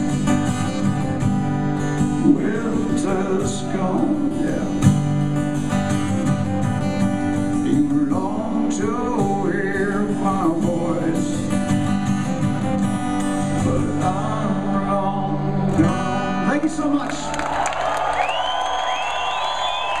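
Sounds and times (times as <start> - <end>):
acoustic guitar: 0.0 - 20.0
man singing: 2.0 - 5.0, 7.5 - 11.8, 13.4 - 16.7
audience cheering and whistling: 17.2 - 20.0.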